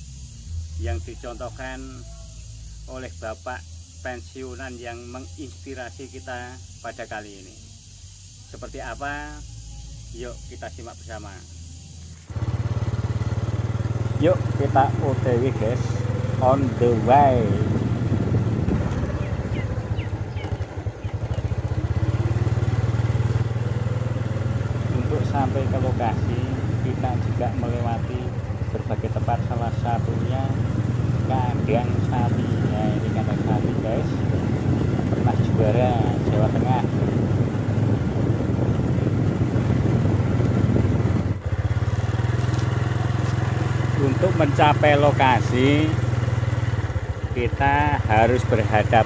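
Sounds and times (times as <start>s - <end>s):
motorcycle engine running: 0.0s - 49.0s.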